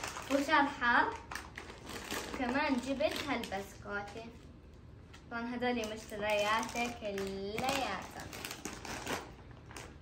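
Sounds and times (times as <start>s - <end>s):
plastic wrappers crackling: 0.0s - 10.0s.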